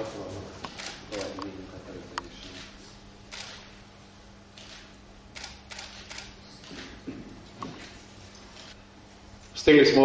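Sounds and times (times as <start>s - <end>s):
camera shutters clicking: 0.7s - 1.5s, 2.4s - 3.7s, 4.6s - 7.0s.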